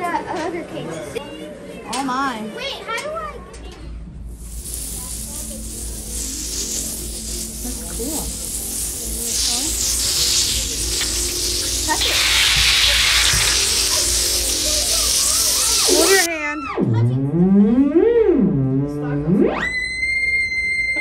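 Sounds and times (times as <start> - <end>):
steady hiss: 4.2 - 16.3
theremin tone sliding: 4.4 - 16.3, 19.2 - 21.0.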